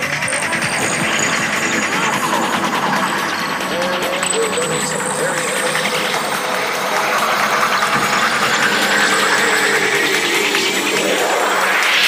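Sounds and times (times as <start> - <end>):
gliding electronic tones: 0.0 - 12.0
noisy machine-like drone: 0.0 - 12.0.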